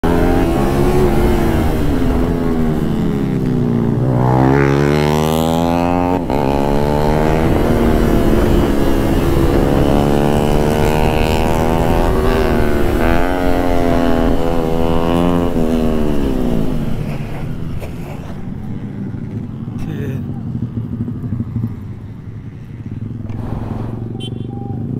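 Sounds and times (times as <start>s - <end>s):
rushing wind: 0.0s - 19.8s, 20.5s - 24.9s
motorcycle engine accelerating: 0.0s - 24.9s.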